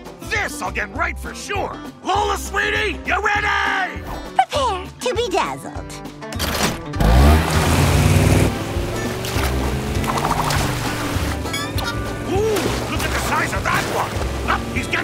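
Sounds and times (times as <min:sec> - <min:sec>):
background music: 0:00.0 - 0:15.0
cartoon boat motor surging: 0:07.0 - 0:12.3, 0:13.2 - 0:15.0
rush of water and spray: 0:07.3 - 0:11.4, 0:12.4 - 0:15.0.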